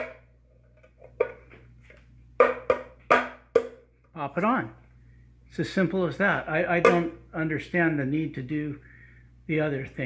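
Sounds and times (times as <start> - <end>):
metal cover handling noise: 0.0 - 1.6, 6.8 - 7.2.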